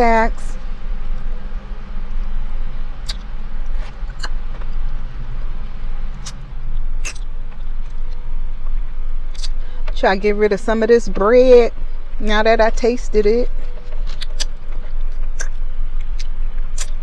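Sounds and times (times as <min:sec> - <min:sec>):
car idling hum: 0:00.0 - 0:17.0
person chewing: 0:03.0 - 0:04.8, 0:06.1 - 0:06.4, 0:07.0 - 0:09.6, 0:14.0 - 0:17.0.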